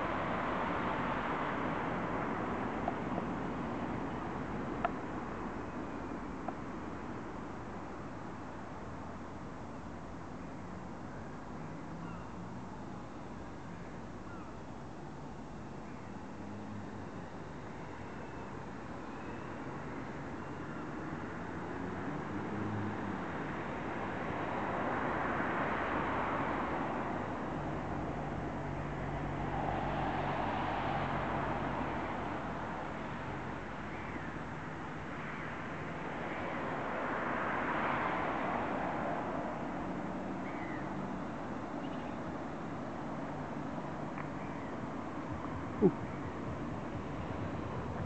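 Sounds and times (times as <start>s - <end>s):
traffic noise: 0.0s - 48.0s.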